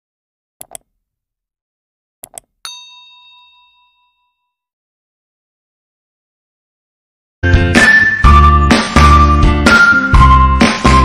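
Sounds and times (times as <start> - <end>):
mouse clicks: 0.6 - 0.9, 2.2 - 2.6
bright bell ding: 2.6 - 4.6.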